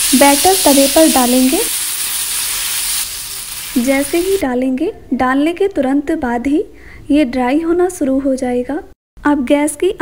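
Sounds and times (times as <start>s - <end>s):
batter sizzling on hot pan: 0.0s - 4.4s.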